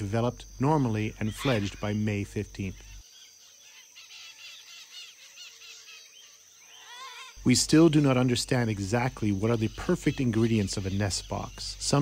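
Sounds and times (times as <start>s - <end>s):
faint bird chirping: 0.0s - 12.0s
high-pitched insect drone: 0.0s - 12.0s.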